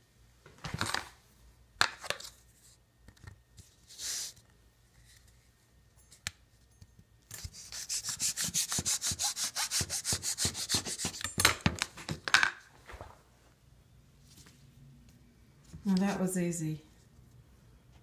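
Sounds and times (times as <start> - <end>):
knife sawing through grapes: 7.6 - 11.2.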